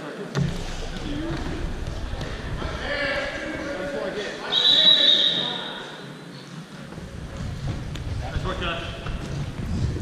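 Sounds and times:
referee's whistle blast: 4.5 - 5.8.

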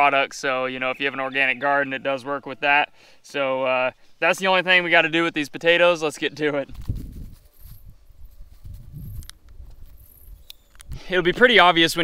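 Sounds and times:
footsteps on straw: 6.8 - 10.3.

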